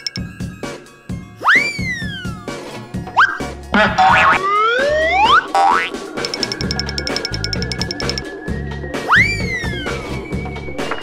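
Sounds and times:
background music: 0.0s - 11.0s
cartoon boing: 3.8s - 4.4s.

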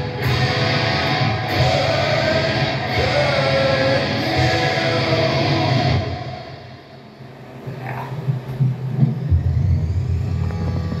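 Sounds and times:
electric guitar through amp: 0.0s - 11.0s.

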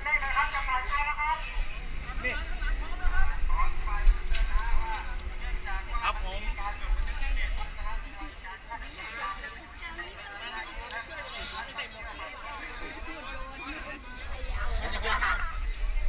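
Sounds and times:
wind rumble on microphone: 0.0s - 8.8s, 12.9s - 16.0s
people talking: 0.0s - 16.0s.

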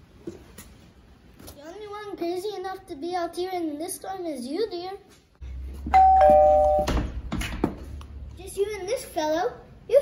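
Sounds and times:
two-tone doorbell chime: 5.9s - 7.0s.

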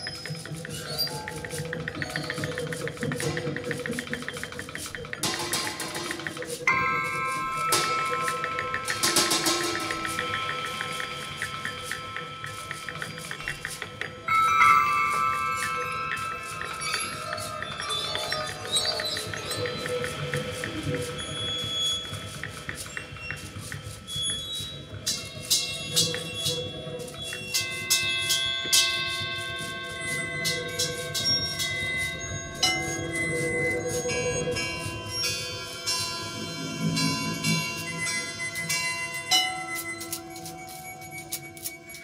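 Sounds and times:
bell-like metal percussion ringing: 0.0s - 42.0s
sharp mallet strikes: 5.2s - 19.0s.

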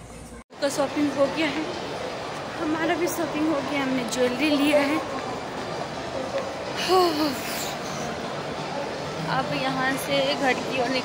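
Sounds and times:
shopping mall hum and hiss: 0.0s - 11.0s.

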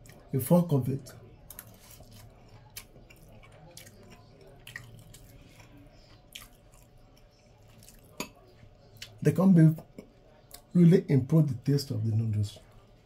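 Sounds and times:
person chewing food: 1.1s - 9.2s, 9.8s - 10.7s.

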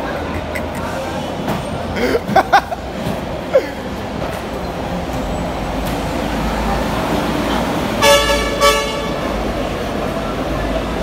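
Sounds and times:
low traffic rumble: 0.0s - 11.0s
vehicle horn tooting: 8.0s - 9.3s.

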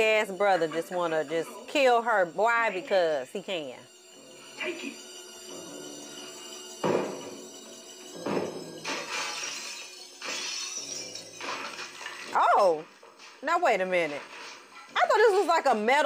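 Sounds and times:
film score: 0.0s - 15.4s
glass shattering: 4.0s - 15.4s.

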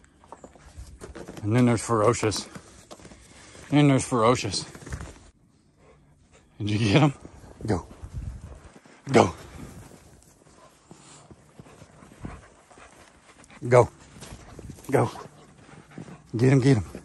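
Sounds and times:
dog breathing: 5.6s - 6.6s, 7.2s - 17.0s.

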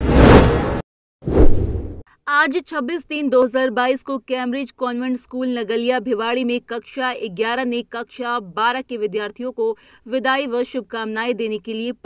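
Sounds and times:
whoosh sound effects: 0.0s - 2.0s.

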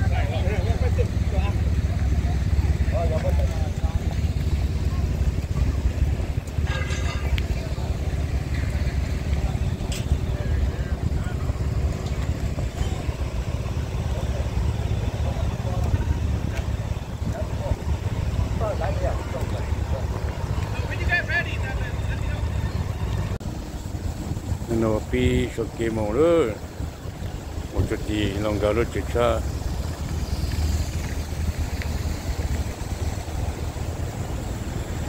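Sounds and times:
motorcycles idling: 0.0s - 35.0s.

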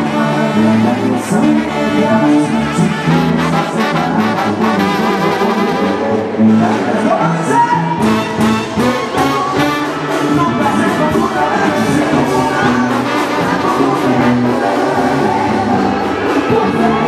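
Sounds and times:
bass line: 0.0s - 17.0s
brass band playing live: 0.0s - 17.0s
drums: 0.0s - 17.0s.

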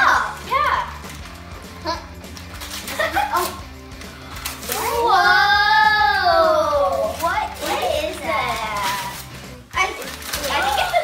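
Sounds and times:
background music: 0.0s - 11.0s
gift wrapping rustle: 0.0s - 11.0s
girls' excited exclamations: 4.7s - 7.2s.

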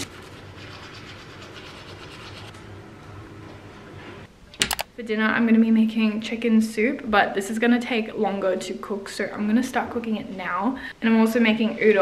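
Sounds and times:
toothbrush scrubbing teeth: 0.0s - 2.5s.

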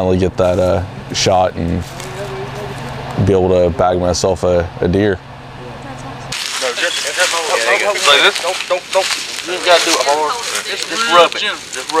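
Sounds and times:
low hum: 0.0s - 12.0s
people talking over one another: 5.6s - 12.0s
crackling and rustling noise: 6.3s - 12.0s.

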